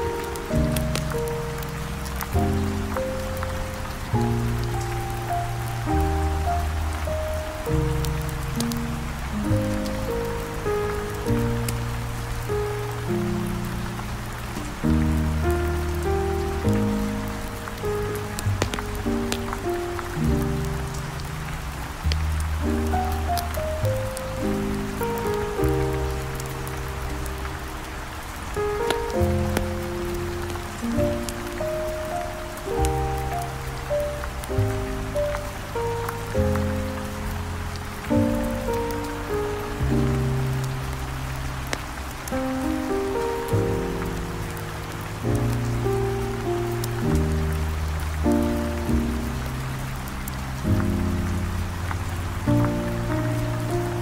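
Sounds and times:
deep bass line: 0:00.0 - 0:28.2
steady rain: 0:00.0 - 0:54.0.

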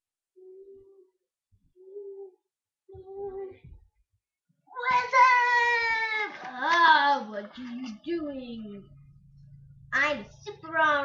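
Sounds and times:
soft hummed voice tones: 0:00.3 - 0:03.8.

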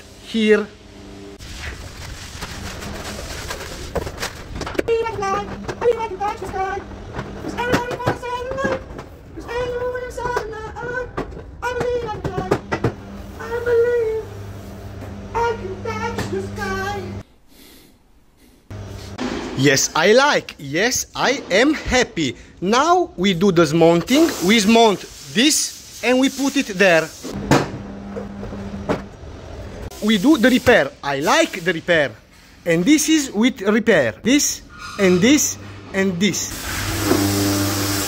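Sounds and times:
high-pitched voice sing-song phrase: 0:15.3 - 0:17.2.

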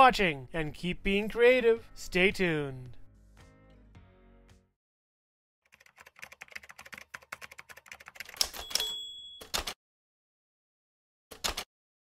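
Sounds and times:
typewriter key strikes: 0:07.8 - 0:09.8
typewriter bell ringing: 0:08.4 - 0:09.8.

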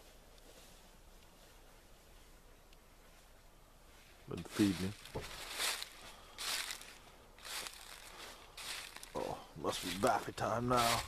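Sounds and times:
footsteps crunching dry leaves: 0:04.3 - 0:11.0.

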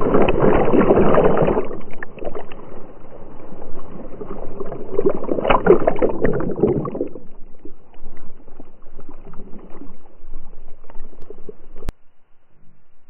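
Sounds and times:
water splashing and sloshing: 0:00.0 - 0:12.0.

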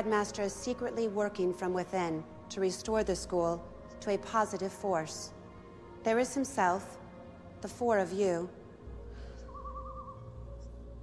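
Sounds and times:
low droning background music: 0:00.0 - 0:11.0
warbling bird call: 0:09.5 - 0:10.3.

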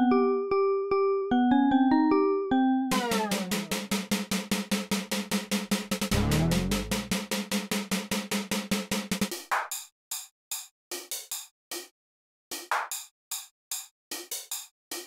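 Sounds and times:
drum machine beat: 0:02.9 - 0:04.6, 0:06.1 - 0:07.3
steady low tone: 0:06.1 - 0:07.1.

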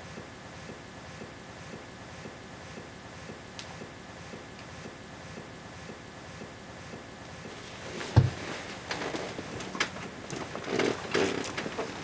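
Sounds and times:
clothing rustling: 0:07.6 - 0:12.0.

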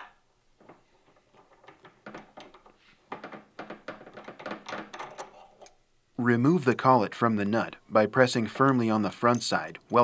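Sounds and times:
clicks and scrapes of steel parts: 0:04.3 - 0:05.8.

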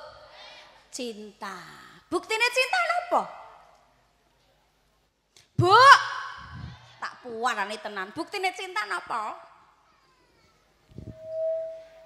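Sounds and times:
microphone feedback ringing: 0:11.0 - 0:12.0.

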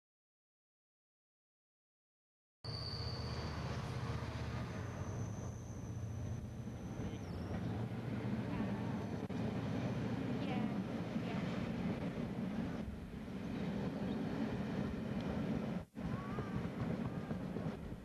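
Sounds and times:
diesel locomotive engine drone: 0:02.7 - 0:18.0.

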